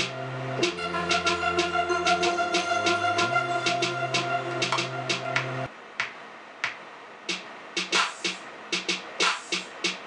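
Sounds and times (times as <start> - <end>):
synth chords: 0.0 - 5.7
programmed drum beat: 0.0 - 10.0.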